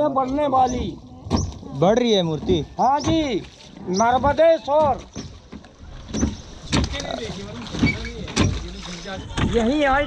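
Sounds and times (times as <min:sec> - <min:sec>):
water around boat hull: 0:00.0 - 0:10.0
oar strokes: 0:02.4 - 0:10.0.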